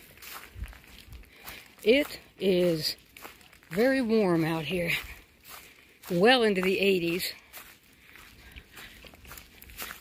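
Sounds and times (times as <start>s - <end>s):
footsteps on dry leaves: 0.0s - 10.0s.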